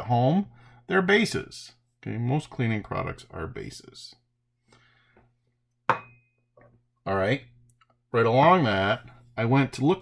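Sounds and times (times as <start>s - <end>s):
glass beaker knocking on table: 5.9s - 6.7s.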